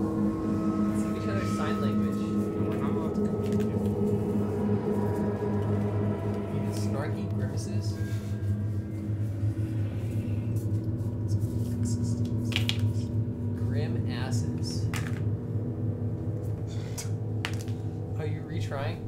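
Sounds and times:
ambient droning music: 0.0s - 19.0s.

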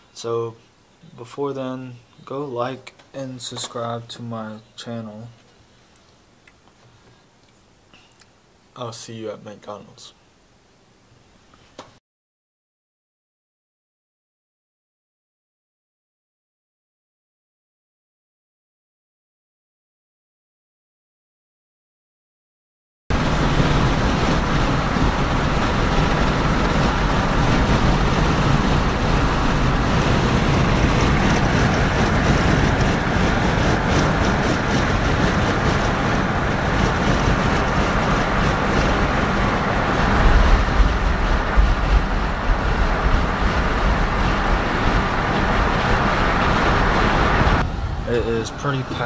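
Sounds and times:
car road noise: 23.1s - 49.0s
uneven low rumble: 23.1s - 49.0s.

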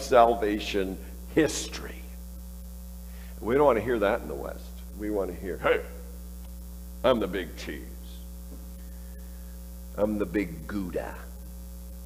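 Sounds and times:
low mains hum: 0.0s - 12.0s.

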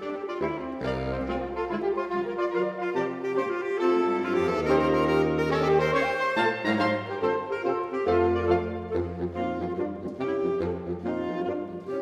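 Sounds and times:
saxophones playing in harmony: 0.0s - 12.0s.

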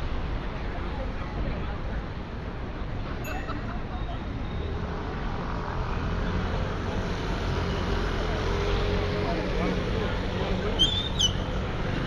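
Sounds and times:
traffic engine rumble: 0.0s - 12.0s
passers-by talking: 0.3s - 12.0s.

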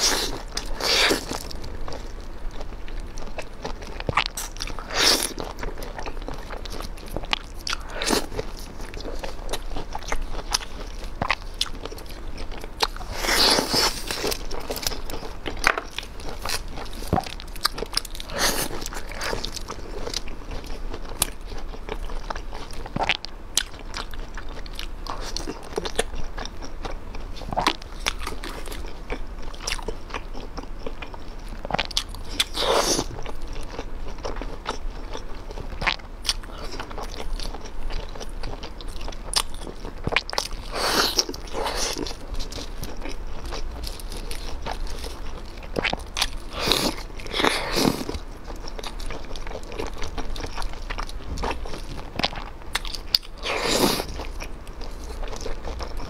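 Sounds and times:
crunchy chewing and biting: 0.0s - 56.0s.

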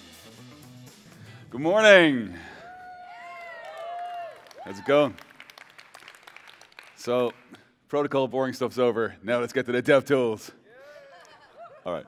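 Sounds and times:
man speaking: 1.5s - 2.5s
audience applause: 3.1s - 7.5s.

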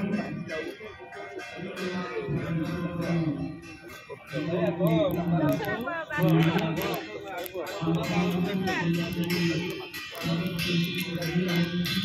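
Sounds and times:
man singing long low notes: 0.0s - 0.8s, 1.6s - 3.7s, 7.8s - 12.0s.

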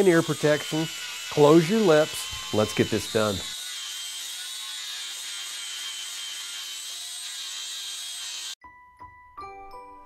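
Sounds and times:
angle grinder grinding steel: 0.0s - 8.6s.

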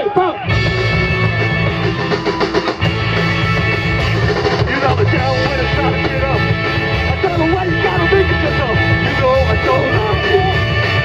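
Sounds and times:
live punk rock band: 0.4s - 11.0s.

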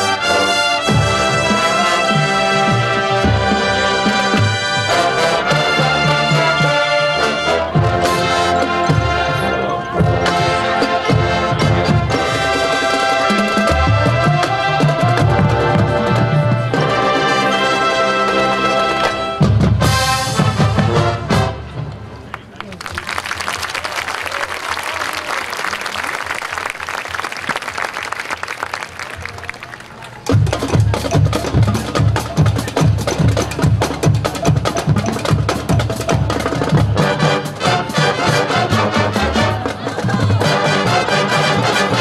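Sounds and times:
marching band drums: 0.0s - 22.2s, 30.2s - 42.0s
marching band brass: 0.0s - 42.0s.

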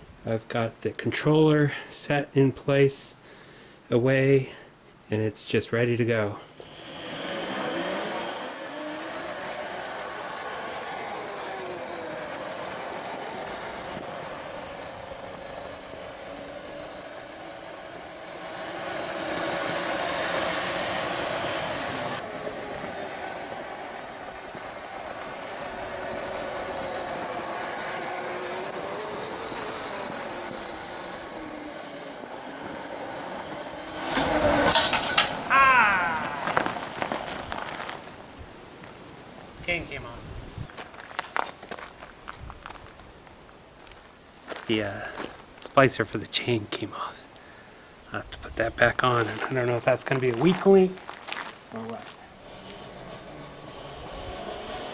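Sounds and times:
electric motor whining: 6.6s - 35.1s, 52.0s - 54.9s
chain clattering and squealing: 28.0s - 32.0s, 33.6s - 37.5s, 52.3s - 54.9s.

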